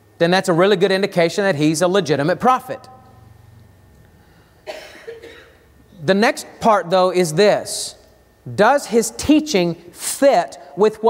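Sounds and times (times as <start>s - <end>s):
throat clearing: 4.6s - 5.6s
person coughing: 4.6s - 5.7s.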